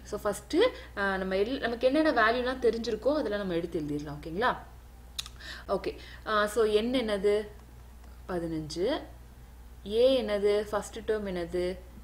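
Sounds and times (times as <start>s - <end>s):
sharp click: 5.2s - 5.4s.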